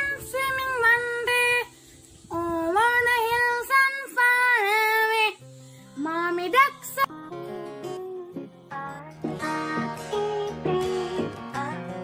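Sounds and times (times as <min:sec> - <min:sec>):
child singing long notes: 0:07.9 - 0:12.0.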